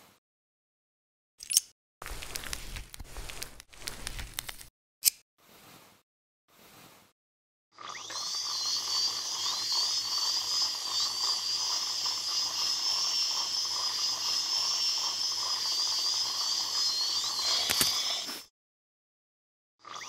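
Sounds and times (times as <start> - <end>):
dental drill whining: 7.8 - 18.4.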